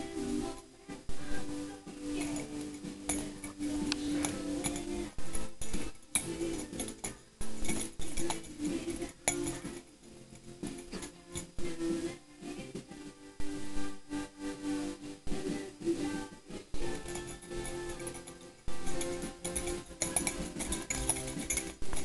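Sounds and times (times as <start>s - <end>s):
music with held notes: 0.0s - 22.0s
short sharp clinks: 16.8s - 22.0s.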